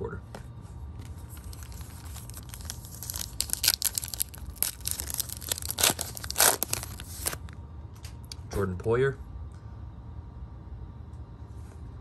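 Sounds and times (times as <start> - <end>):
foil wrapper crinkling and tearing: 1.2 - 7.5.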